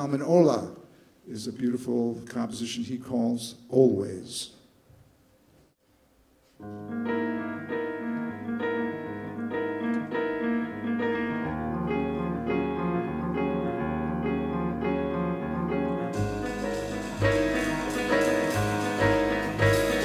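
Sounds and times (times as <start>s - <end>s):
solo jazz piano chords: 6.6s - 20.0s.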